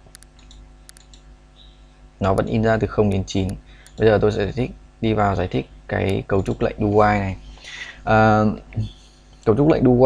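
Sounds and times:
computer mouse clicks: 0.0s - 1.7s, 3.1s - 4.1s, 6.0s - 6.7s
faint steady hum: 0.0s - 10.0s.

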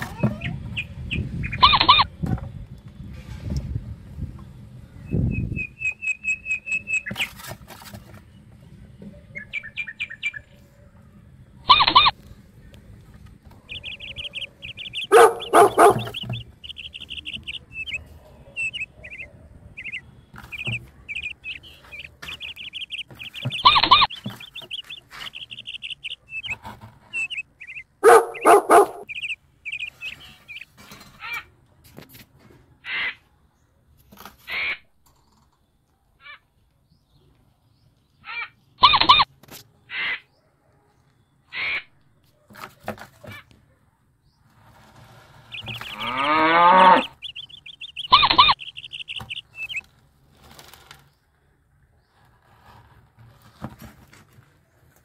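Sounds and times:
harsh animal calls: 1.5s - 2.1s, 11.6s - 12.2s, 13.6s - 30.6s, 45.4s - 49.8s
small animal chirping: 1.5s - 2.1s, 11.6s - 12.2s, 13.7s - 30.7s, 45.4s - 49.9s.

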